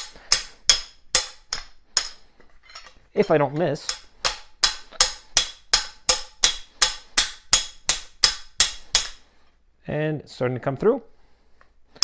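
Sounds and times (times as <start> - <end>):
hammer striking metal tool: 0.0 - 9.2.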